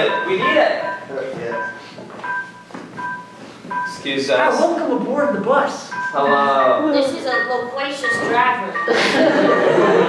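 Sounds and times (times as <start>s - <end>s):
keyboard playing two-note figure: 0.0s - 4.1s.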